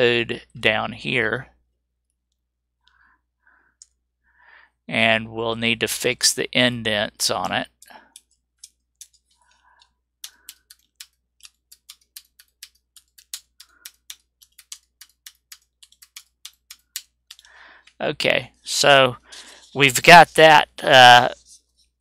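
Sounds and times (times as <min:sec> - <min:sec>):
computer keyboard keys pressed: 0:10.2 - 0:17.5.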